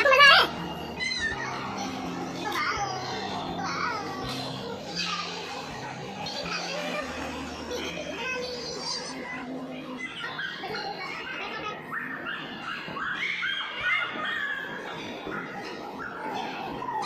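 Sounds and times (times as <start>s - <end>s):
young children shrieking at play: 0.0s - 7.2s, 10.0s - 17.0s.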